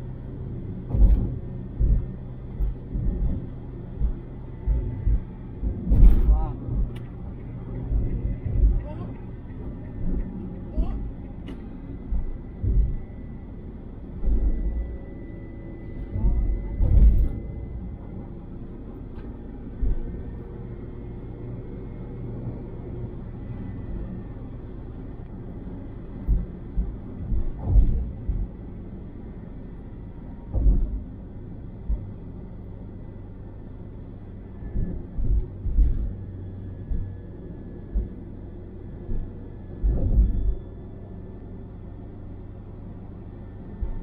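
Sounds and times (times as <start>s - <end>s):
car road and engine rumble: 0.0s - 44.0s
brief low thumps: 30.5s - 31.0s.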